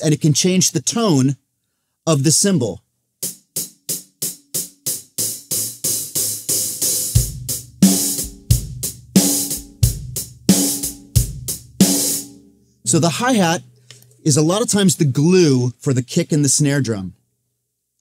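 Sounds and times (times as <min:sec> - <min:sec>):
snare drum: 0:03.2 - 0:12.3
hi-hat playing: 0:03.2 - 0:15.0
kick drum: 0:07.2 - 0:10.4.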